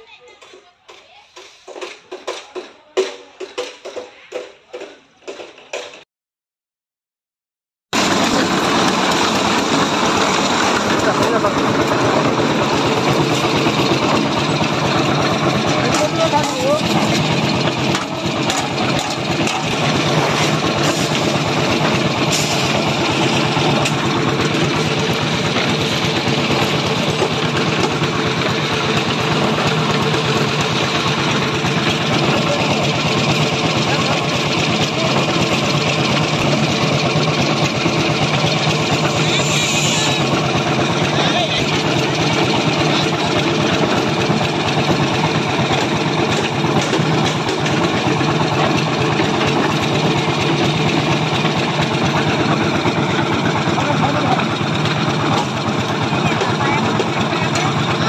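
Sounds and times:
concrete mixer engine drone: 8.0 - 58.0.

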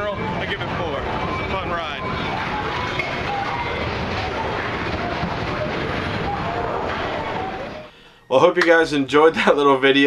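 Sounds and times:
faint indistinct voices: 0.0 - 7.9
outdoor ambient noise: 0.0 - 8.4.

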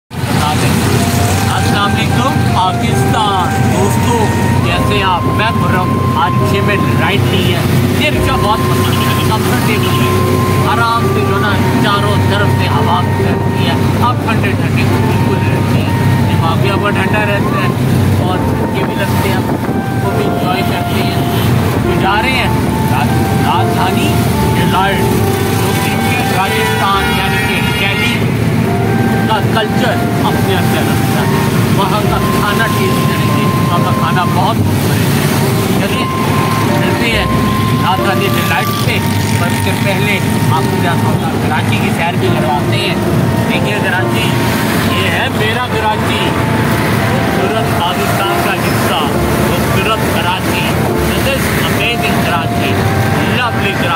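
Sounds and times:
auto-rickshaw engine running: 0.1 - 53.9
man talking: 0.2 - 28.3, 28.9 - 53.9.

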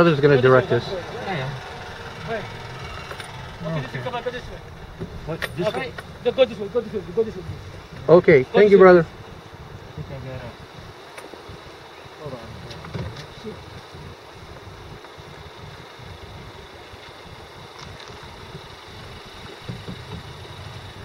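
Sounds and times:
faint voices outside: 0.0 - 16.3
car engine idling: 0.0 - 21.0.

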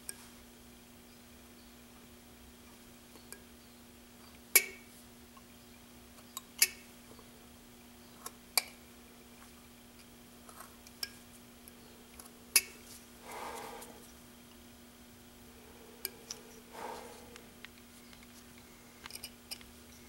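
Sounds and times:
gloved hands rustling: 12.8 - 14.2.

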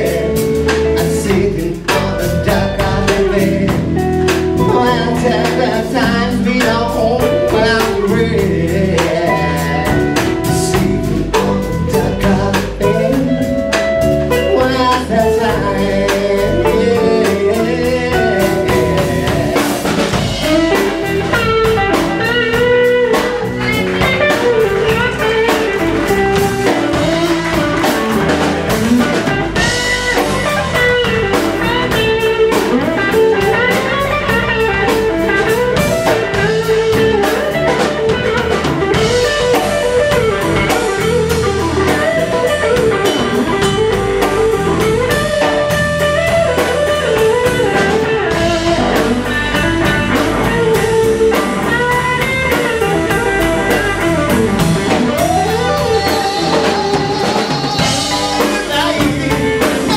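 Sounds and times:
bass guitar: 0.0 - 59.9
drums: 0.0 - 59.9
electric guitar lead lines: 0.0 - 59.9.

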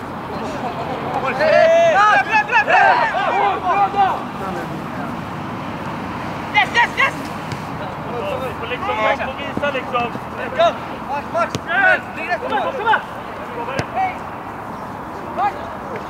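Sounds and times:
steady background noise: 0.0 - 16.0
men shouting: 0.4 - 4.7, 6.3 - 7.2, 8.2 - 14.2.

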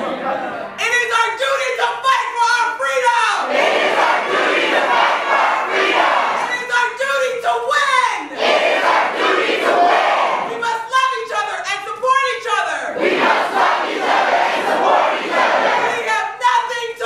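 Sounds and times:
crowd chanting in unison: 3.4 - 6.6, 8.3 - 10.5, 12.9 - 16.1.

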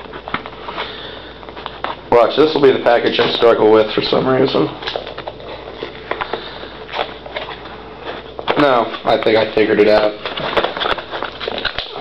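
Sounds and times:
package being opened by hand: 10.2 - 12.0.

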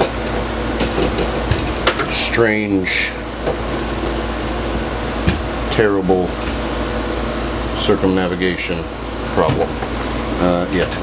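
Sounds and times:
air conditioner humming: 0.0 - 11.0.

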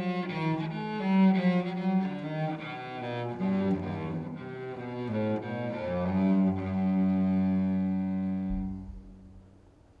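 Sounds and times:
cello bowed note: 0.0 - 9.5.

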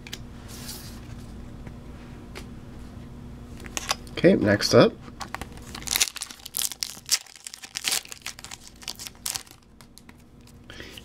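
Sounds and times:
foil wrapper crinkling and tearing: 5.2 - 10.6.

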